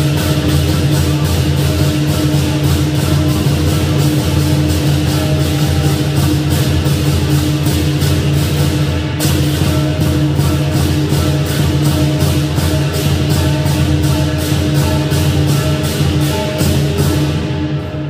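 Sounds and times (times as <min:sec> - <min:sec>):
big drum beating fast rhythm: 0:00.0 - 0:18.0
crashing cymbals: 0:00.0 - 0:18.0
ringing gong: 0:00.0 - 0:18.0.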